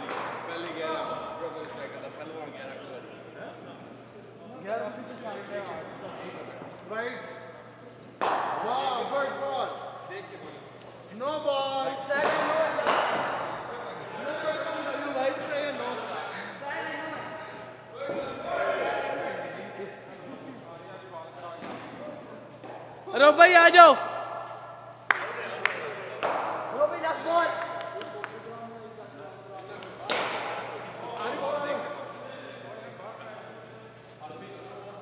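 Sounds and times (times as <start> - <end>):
men talking: 0.0 - 7.7, 8.5 - 35.0.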